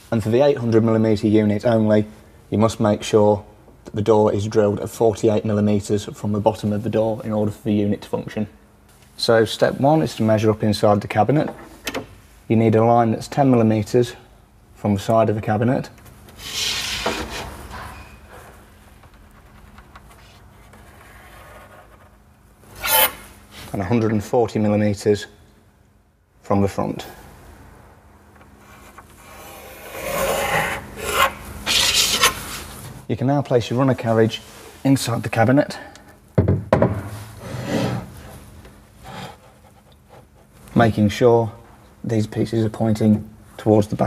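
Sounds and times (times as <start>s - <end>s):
pencil scratching along steel ruler: 28.7s - 32.4s.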